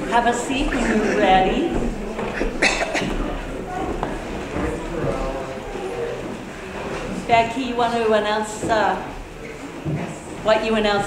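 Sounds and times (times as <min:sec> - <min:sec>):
people chattering: 0:00.0 - 0:11.0.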